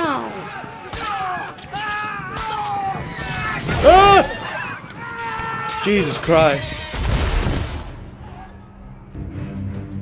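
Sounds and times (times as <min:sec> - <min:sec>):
deep boom and crash: 0:07.0 - 0:08.2.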